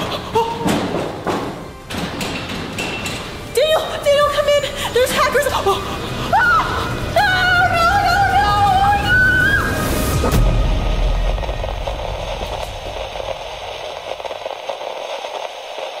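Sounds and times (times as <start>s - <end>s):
steady hiss: 9.8s - 16.0s.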